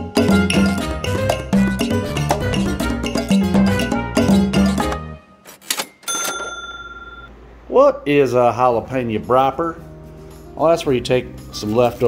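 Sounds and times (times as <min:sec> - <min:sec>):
bell-like ding: 0:05.8 - 0:07.3
man speaking: 0:07.7 - 0:09.8.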